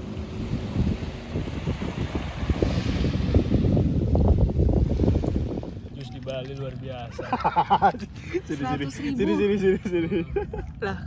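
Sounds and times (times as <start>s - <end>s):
wind buffeting microphone: 0.0s - 10.6s
calm sea washing: 0.0s - 11.0s.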